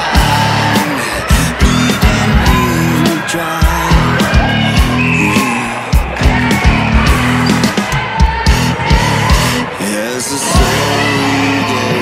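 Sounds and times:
music with drum beat and bass: 0.0 - 9.7.

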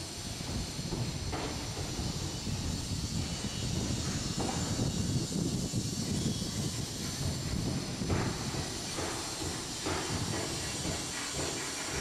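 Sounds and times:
steady hiss: 0.0 - 12.0.

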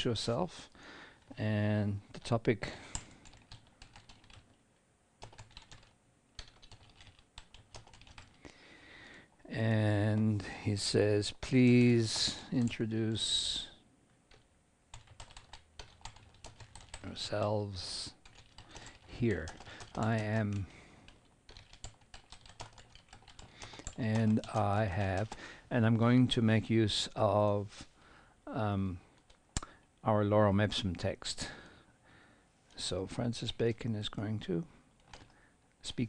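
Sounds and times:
typing on keyboard: 2.9 - 4.5, 5.2 - 8.4, 14.3 - 17.4, 18.2 - 25.4, 35.0 - 35.4.

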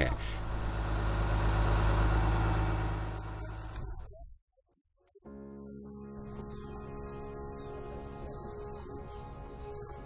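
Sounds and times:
diesel truck engine running: 0.0 - 4.1.

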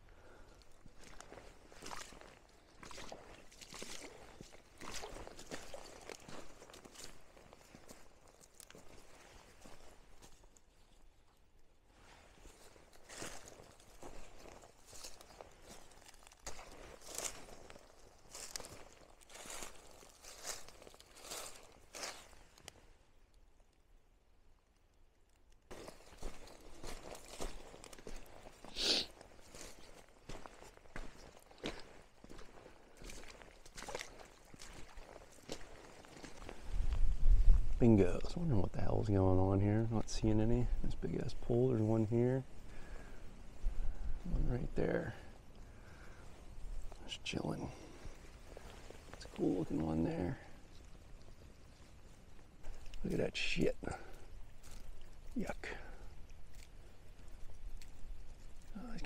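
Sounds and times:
footsteps crunching on gravel and leaves: 0.7 - 11.0, 12.0 - 22.7, 25.7 - 37.7, 45.9 - 56.8.

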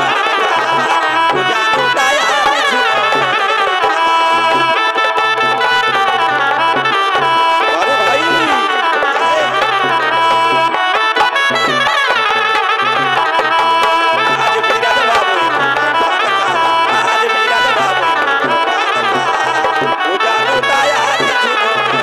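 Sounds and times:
hand drum rhythm: 0.0 - 22.0
ornamented folk melody: 0.0 - 22.0.

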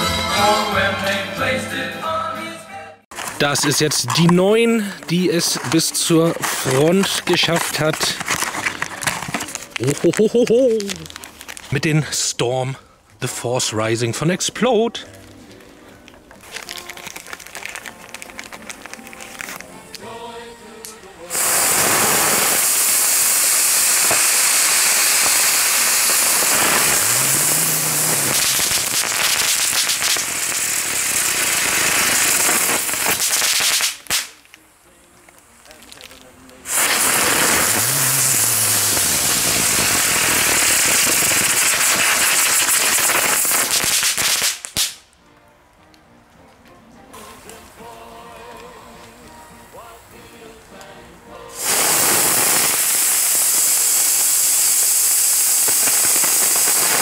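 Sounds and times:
fireworks hissing sparks: 3.1 - 11.9, 16.4 - 20.0, 21.3 - 45.0, 51.5 - 57.0.

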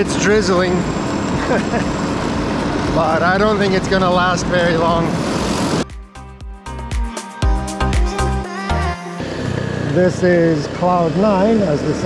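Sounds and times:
scooter engine running: 0.0 - 5.8, 9.0 - 12.0
person laughing: 1.4 - 2.0.

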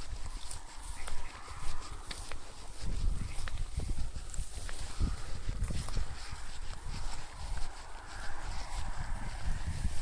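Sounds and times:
footsteps through long grass: 0.0 - 10.0
grass rustling: 0.0 - 10.0.

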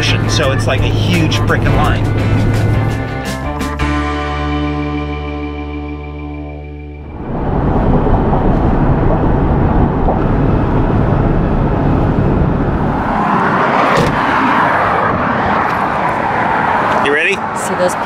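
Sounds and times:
car road and wind noise: 0.0 - 4.7, 6.2 - 18.0.

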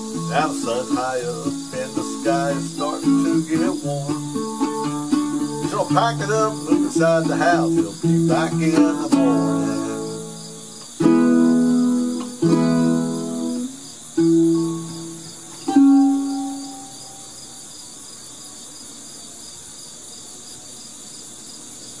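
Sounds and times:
ukulele strummed chords: 0.0 - 17.3
insects chirping: 0.0 - 22.0.

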